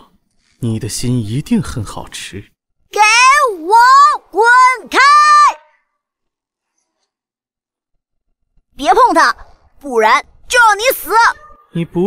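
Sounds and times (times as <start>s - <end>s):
high-pitched cartoon voice shouting: 3.0s - 5.6s, 10.0s - 11.7s.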